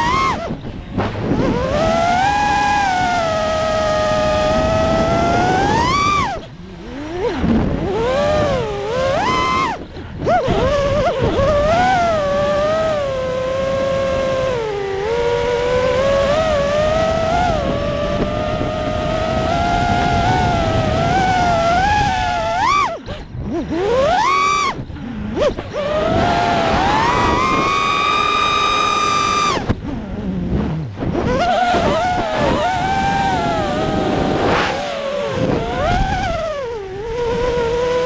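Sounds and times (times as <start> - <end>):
drone motors whining: 0.0 - 38.0.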